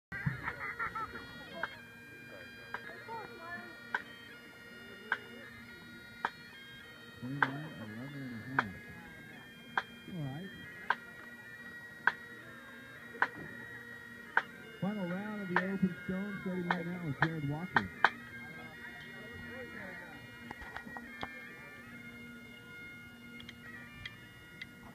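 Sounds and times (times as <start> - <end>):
distant bagpipes: 0.1 - 24.9
public address voice: 14.8 - 18.0.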